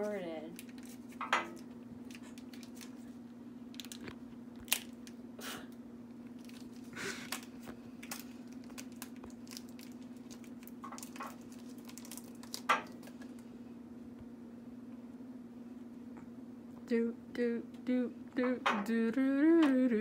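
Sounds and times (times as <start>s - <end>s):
steady low hum: 0.0s - 20.0s
plastic clicks and crinkles: 3.7s - 5.2s, 6.4s - 13.4s.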